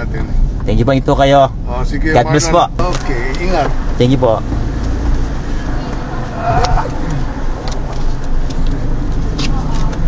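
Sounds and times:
car engine idling: 0:00.0 - 0:10.0
light clicks and rustles: 0:07.6 - 0:10.0.

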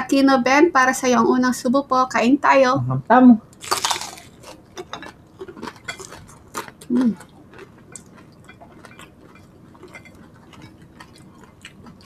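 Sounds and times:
person humming: 0:02.8 - 0:03.0
crunchy chewing: 0:03.6 - 0:12.0.

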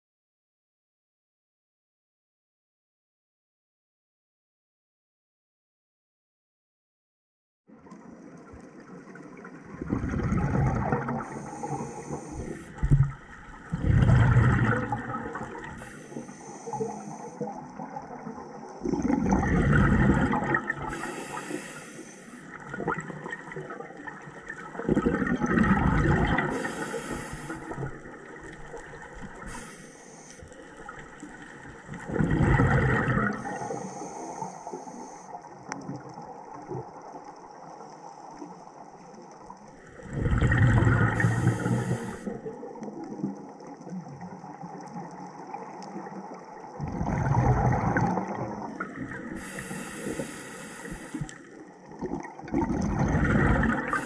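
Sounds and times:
rush of exhaled bubbles: 0:09.0 - 0:29.9, 0:30.8 - 0:37.0, 0:39.9 - 0:54.0
regulator hiss: 0:11.3 - 0:12.7, 0:20.9 - 0:22.4, 0:26.5 - 0:27.8, 0:29.4 - 0:30.5, 0:33.4 - 0:35.3, 0:49.4 - 0:51.3.

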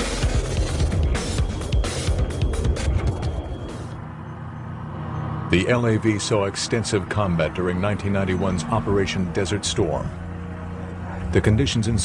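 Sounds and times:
background music: 0:00.0 - 0:04.2.

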